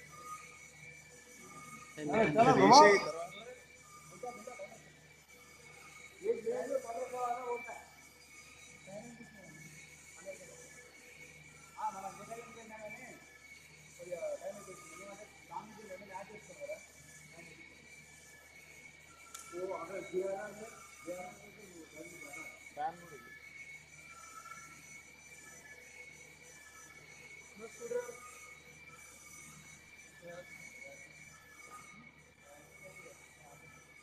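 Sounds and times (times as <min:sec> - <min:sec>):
faint indistinct voices talking: 0:00.0 - 0:34.0
steady high-pitched whine: 0:00.0 - 0:34.0.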